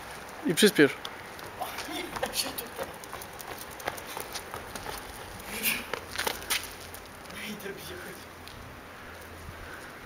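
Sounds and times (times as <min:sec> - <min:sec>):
footsteps on paving stones: 0:00.0 - 0:10.0.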